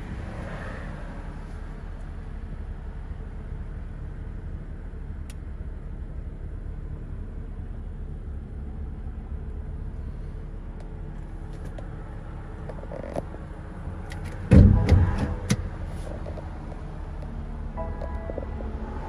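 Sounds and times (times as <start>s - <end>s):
low car cabin rumble: 1.1s - 19.0s
loud thump: 14.4s - 15.9s.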